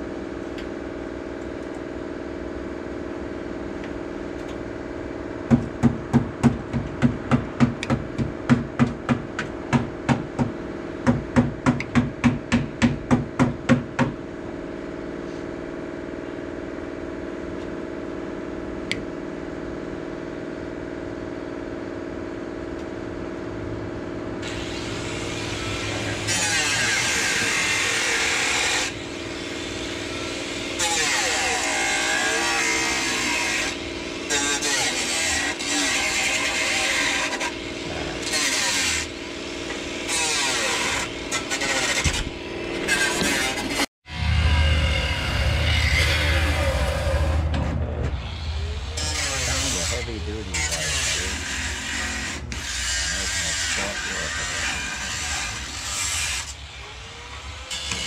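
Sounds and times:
steady machine hum: 0.0s - 58.0s
loud power tool running: 9.5s - 58.0s
hammer blows: 44.1s - 52.7s.

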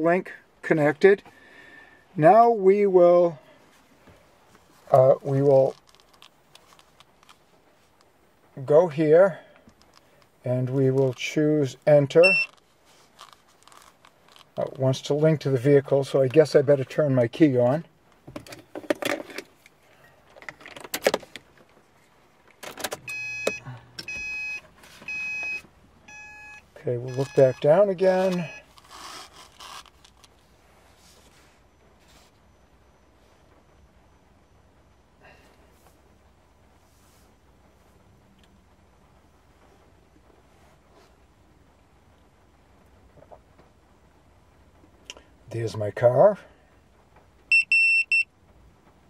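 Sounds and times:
electronic chime beeping: 23.1s - 27.6s, 28.3s - 28.7s.

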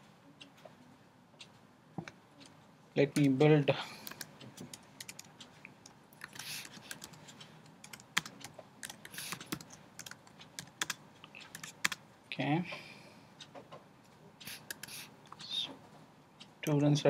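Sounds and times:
computer keyboard typing: 3.1s - 3.4s, 4.0s - 12.0s, 14.4s - 15.5s.

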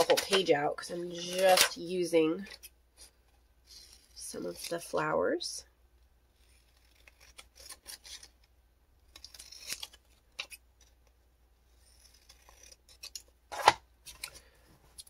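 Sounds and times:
scissors snipping paper: 6.4s - 8.5s, 9.1s - 11.0s, 11.8s - 13.3s.

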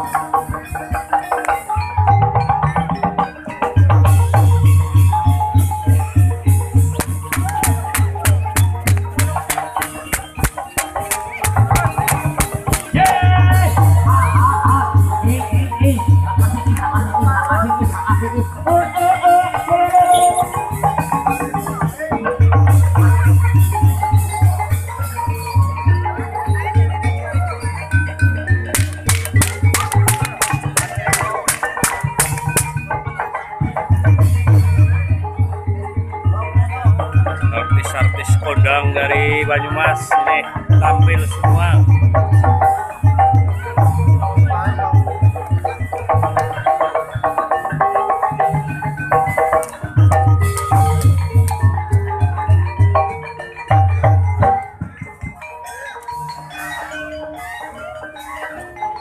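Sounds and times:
gamelan music: 0.0s - 59.0s
mallet percussion ringing melody: 0.0s - 59.0s
sharp drum strokes: 6.5s - 14.0s.

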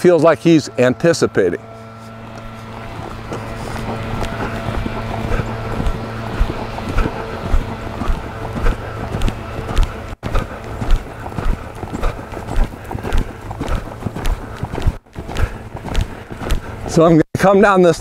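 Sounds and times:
horse hoofbeats on sand: 1.9s - 17.2s.

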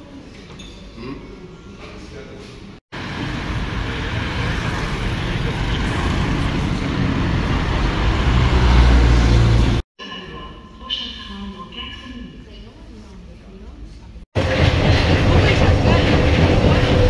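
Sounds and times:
passing vehicles rushing: 3.0s - 9.8s.

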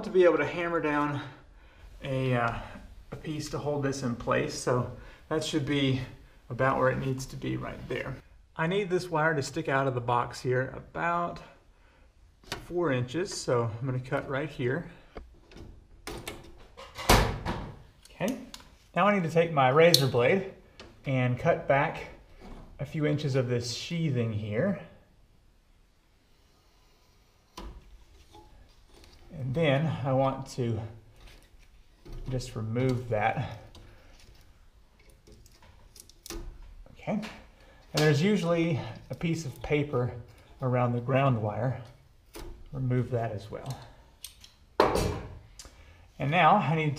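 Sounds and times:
gloved hands handling cable: 27.4s - 41.1s
cable being cut clicks and snips: 43.6s - 44.6s.

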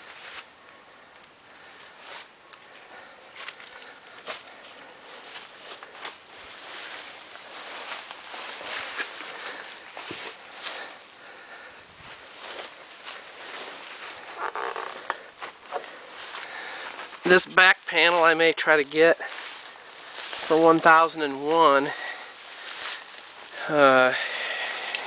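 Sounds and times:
footsteps on dry leaves: 3.4s - 25.0s.

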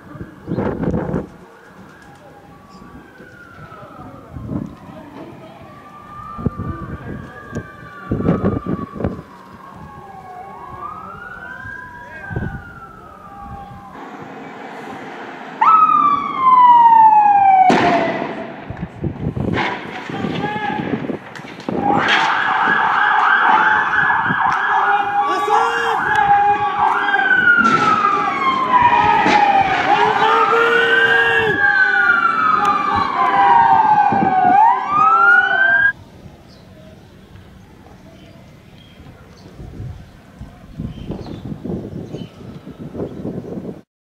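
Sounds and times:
police sirens wailing: 0.0s - 36.0s, 39.0s - 43.7s
fast warbling siren: 1.8s - 14.8s, 15.4s - 18.6s, 21.8s - 36.0s
sharp bangs: 13.9s - 24.9s, 26.0s - 30.5s.

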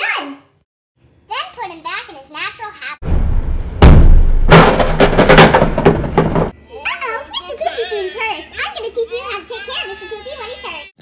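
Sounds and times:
distorted knocks and thuds: 3.0s - 6.6s.

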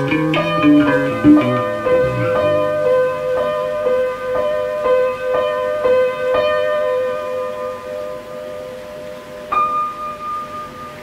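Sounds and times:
plucked notes: 0.0s - 4.0s.

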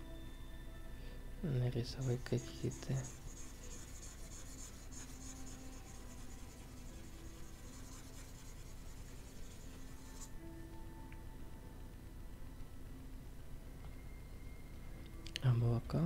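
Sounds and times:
faint music: 0.0s - 16.0s
stylus scratching on tablet: 2.0s - 10.3s.

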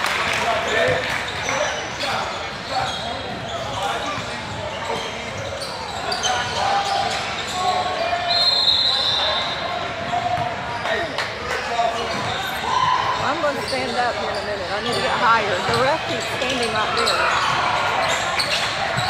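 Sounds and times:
voices of players and spectators: 0.0s - 19.0s.

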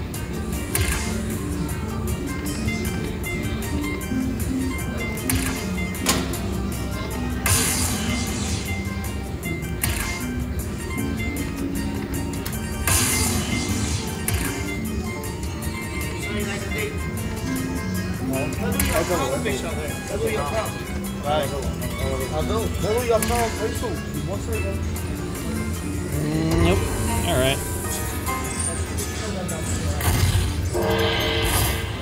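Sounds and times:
slot machine electronic notes and chimes: 30.2s - 32.0s.

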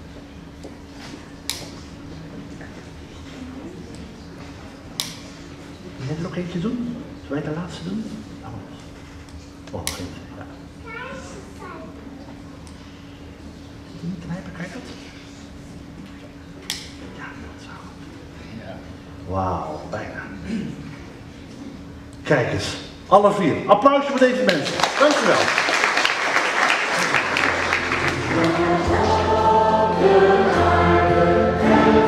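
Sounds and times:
low room hum: 0.0s - 32.0s.

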